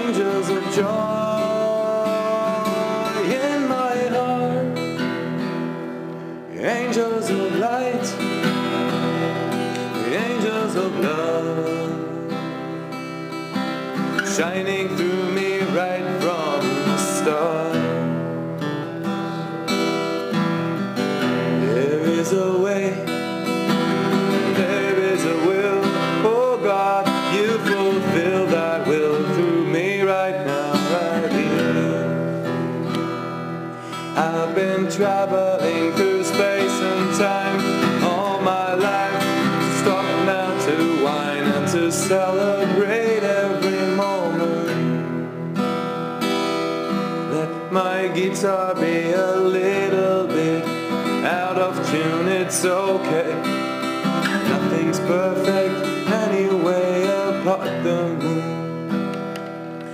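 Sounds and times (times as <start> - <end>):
person singing wordless melody: 0.0 - 45.6, 47.0 - 59.1
acoustic guitar strumming: 0.0 - 59.9.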